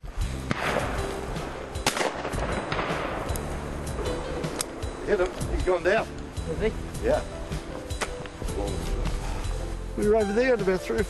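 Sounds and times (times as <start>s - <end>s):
shotgun shots: 0.5s - 1.0s, 1.8s - 3.3s.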